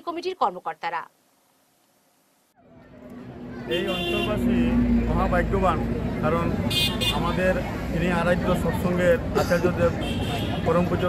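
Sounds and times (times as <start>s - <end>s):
people's voices: 2.6s - 11.0s.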